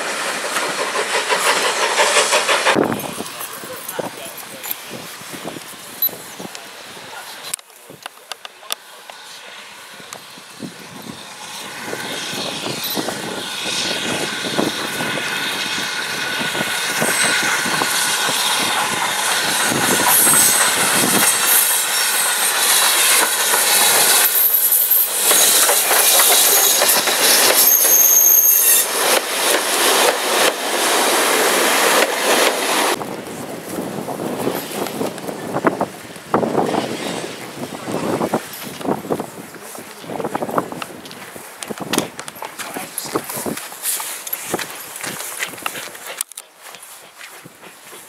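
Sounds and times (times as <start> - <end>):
steam locomotive passing: 0.0 - 48.0
wheels clattering over rail joints: 16.2 - 33.0
high-pitched wheel squeals: 24.2 - 28.9.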